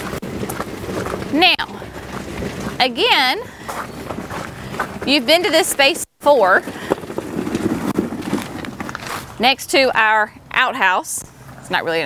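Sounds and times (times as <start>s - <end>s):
wagon wheels crunching on gravel: 0.0s - 10.1s.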